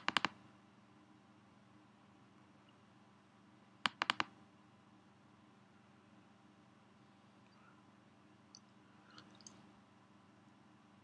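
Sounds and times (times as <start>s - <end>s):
computer mouse button clicks: 0.0s - 0.4s, 3.9s - 4.3s.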